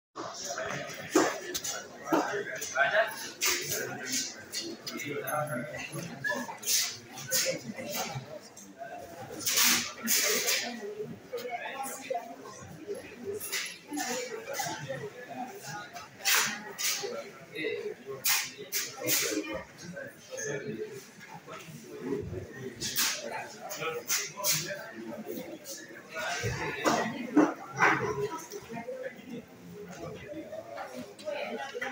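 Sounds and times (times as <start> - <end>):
people talking indistinctly: 0.2 - 31.9
voices murmuring in a room: 0.2 - 31.9.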